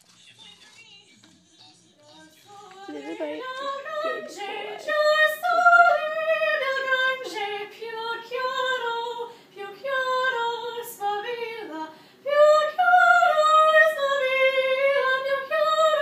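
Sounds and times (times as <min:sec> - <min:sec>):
girl singing unaccompanied: 0:02.5 - 0:16.0.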